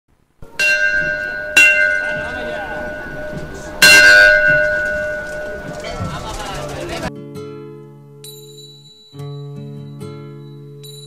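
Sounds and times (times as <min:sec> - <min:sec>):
bell ringing: 0:00.4 - 0:07.1, 0:08.3 - 0:09.5.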